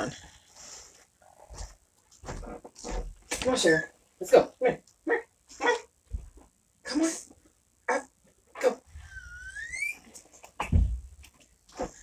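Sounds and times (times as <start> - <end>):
dog whining: 8.6 - 10.1.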